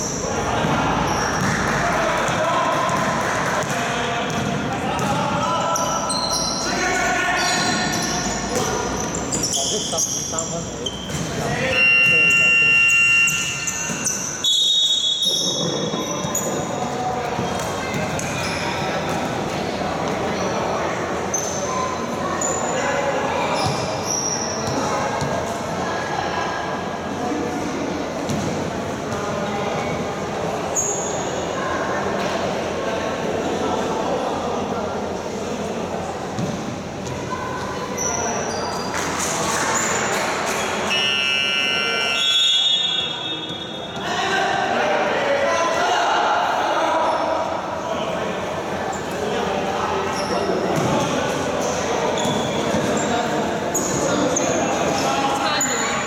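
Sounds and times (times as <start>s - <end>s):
sneakers squeaking: 0.0s - 25.6s, 30.7s - 31.5s, 36.3s - 44.2s, 50.0s - 56.0s
sports hall noise: 0.0s - 56.0s.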